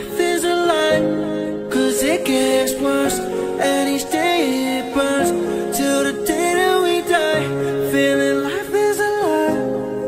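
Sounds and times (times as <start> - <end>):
recorded pop song: 0.0 - 10.0.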